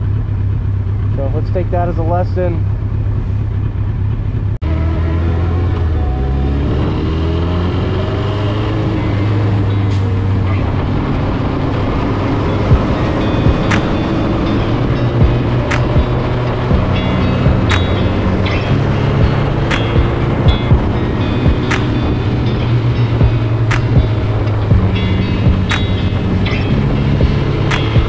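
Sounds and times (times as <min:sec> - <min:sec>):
motorcycle engine accelerating: 0:00.0 - 0:28.0.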